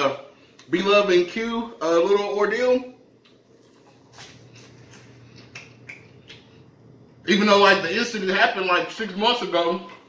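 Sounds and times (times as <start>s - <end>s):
popcorn being chewed: 3.2s - 6.6s.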